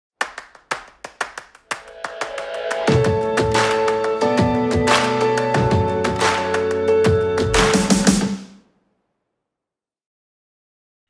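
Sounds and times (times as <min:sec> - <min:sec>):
rhythmic clap percussion: 0:00.2 - 0:08.5.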